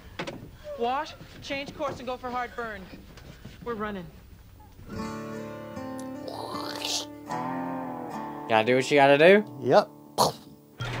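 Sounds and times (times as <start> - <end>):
strummed acoustic guitar music: 4.8 - 11.0.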